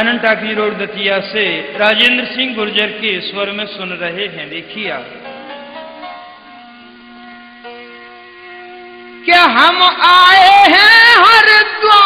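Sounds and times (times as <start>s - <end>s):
sustained instrumental chord: 4.3s - 10.8s.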